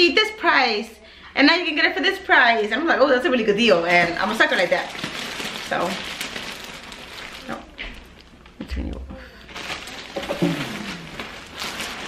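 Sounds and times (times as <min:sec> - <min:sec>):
plastic bag rustling: 0:03.6 - 0:08.6, 0:09.4 - 0:12.0.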